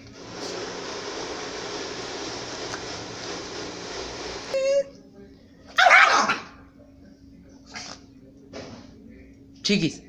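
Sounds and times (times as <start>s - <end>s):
dog yelp: 5.8s - 6.5s
small dog snarling and barking: 5.8s - 6.5s.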